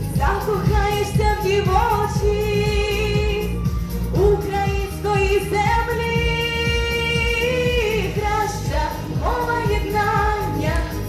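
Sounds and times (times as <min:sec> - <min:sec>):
instrumental accompaniment with beat: 0:00.0 - 0:11.0
woman singing: 0:00.0 - 0:11.0.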